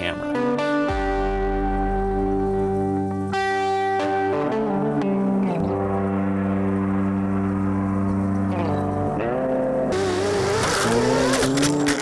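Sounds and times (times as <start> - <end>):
background music with held chords: 0.0 - 12.0
rc truck driving through dirt: 10.0 - 12.0.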